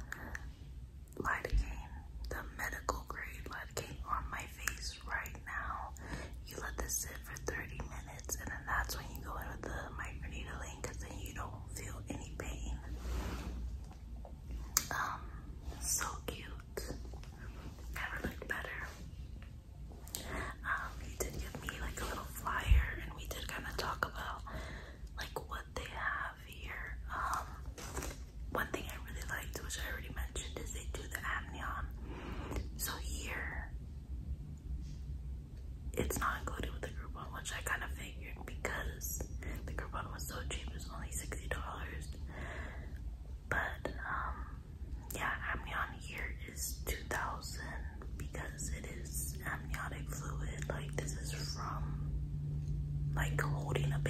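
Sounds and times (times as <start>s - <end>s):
woman whispering: 0.0s - 13.2s, 14.6s - 19.2s, 20.1s - 33.8s, 35.9s - 42.3s, 43.4s - 52.2s, 53.1s - 54.0s
low steady hum: 0.0s - 54.0s.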